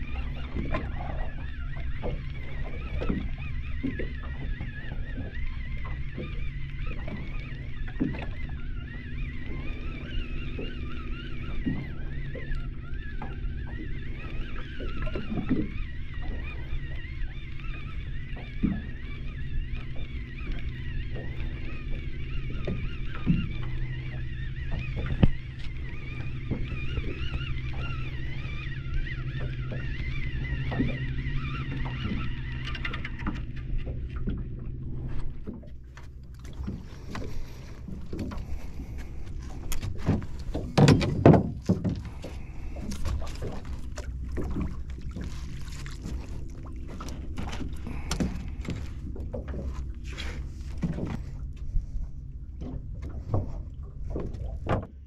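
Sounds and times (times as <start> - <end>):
fishing reel whining: 0.0 - 41.2, 41.9 - 51.5
steady low hum: 0.0 - 55.0.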